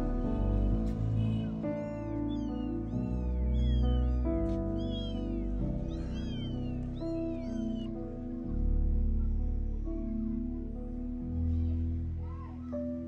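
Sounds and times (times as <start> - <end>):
kittens mewing: 0.0 - 8.2
background music: 0.0 - 13.0.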